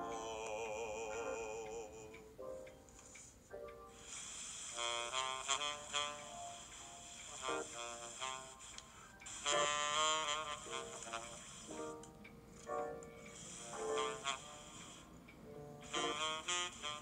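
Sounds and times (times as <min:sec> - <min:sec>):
sparse piano notes: 0:00.0 - 0:02.9
saxophone solo: 0:04.7 - 0:06.7, 0:07.3 - 0:12.0, 0:13.5 - 0:15.1, 0:15.8 - 0:17.0.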